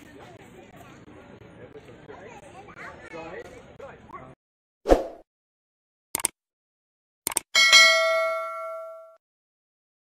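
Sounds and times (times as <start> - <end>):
bright bell chime: 7.6 - 9.2.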